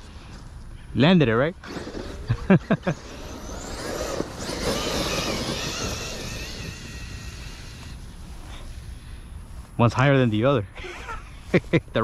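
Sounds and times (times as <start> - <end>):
electric rc truck motor whine: 1.6 - 8.7
people laughing: 2.3 - 3.2.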